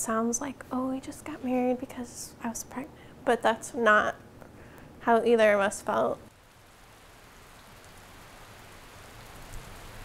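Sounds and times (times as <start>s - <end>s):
soft steady rain: 0.0s - 10.0s.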